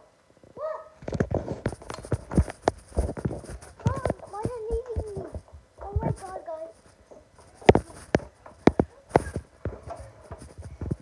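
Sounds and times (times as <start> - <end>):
rapid irregular knocks and clicks: 1.0 - 11.0.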